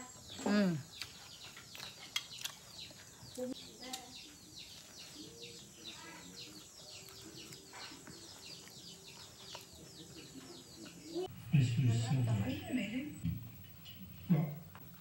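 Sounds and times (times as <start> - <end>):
faint bird chirping: 0.0 - 14.5.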